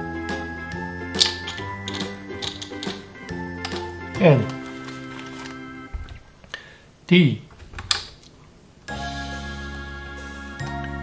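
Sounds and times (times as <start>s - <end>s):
background music with sustained notes: 0.0s - 5.9s, 8.9s - 11.0s.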